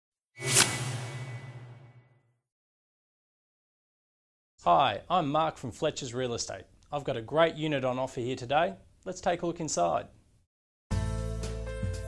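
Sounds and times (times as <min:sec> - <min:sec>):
whoosh sound effect: 0:00.4 - 0:02.2.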